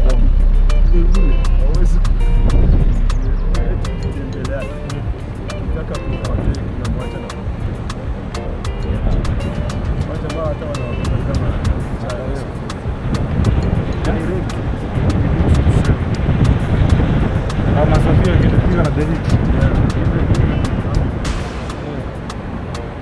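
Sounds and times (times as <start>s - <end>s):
car driving on road: 0.0s - 23.0s
music with steady beat: 0.0s - 23.0s.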